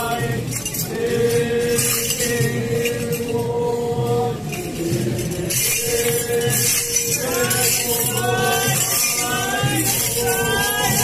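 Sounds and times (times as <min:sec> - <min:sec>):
metallic jingling rattles: 0:04.4 - 0:11.0.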